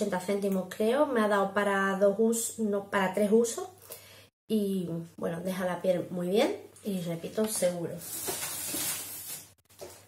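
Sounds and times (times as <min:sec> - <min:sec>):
rustling and rummaging: 0:07.4 - 0:10.0.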